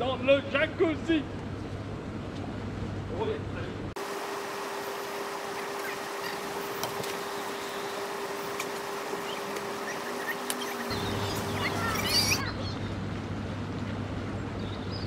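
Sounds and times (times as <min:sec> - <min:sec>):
hot tub bubbles hissing: 0:04.0 - 0:12.5
steady hum tone: 0:04.0 - 0:13.6
high squeaks and clicks: 0:08.6 - 0:12.4.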